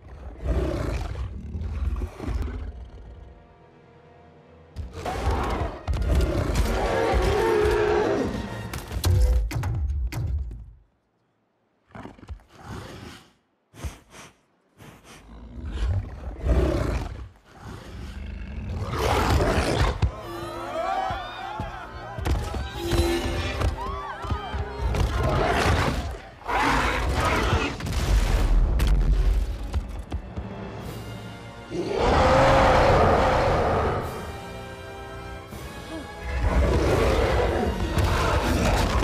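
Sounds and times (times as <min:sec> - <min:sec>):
dramatic music: 0:28.7 - 0:39.0
giant wolf roaring: 0:31.7 - 0:34.4.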